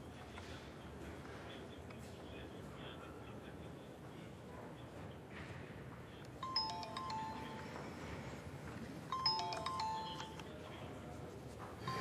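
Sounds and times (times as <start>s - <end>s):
phone ringtone: 6.4s - 8.4s, 9.0s - 10.7s, 11.8s - 12.0s.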